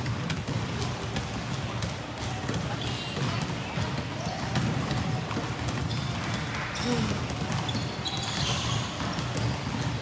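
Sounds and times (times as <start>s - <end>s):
basketballs dribbled on hard floor: 0.0s - 10.0s.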